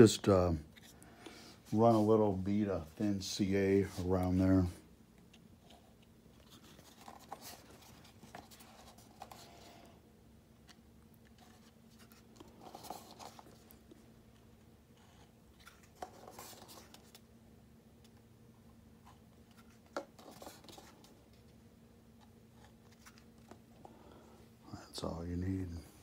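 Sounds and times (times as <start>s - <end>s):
low steady hum: 0.0s - 26.0s.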